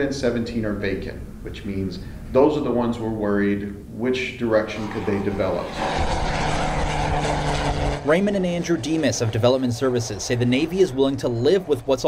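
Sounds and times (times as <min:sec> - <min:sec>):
propeller airplane flying overhead: 0:04.7 - 0:12.0.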